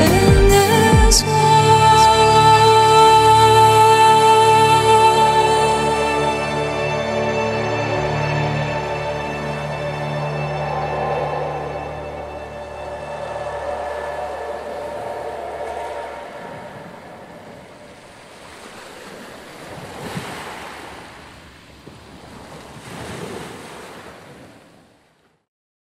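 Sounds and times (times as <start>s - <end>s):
held music chord: 0.0s - 18.1s
ocean waves washing: 1.4s - 25.1s.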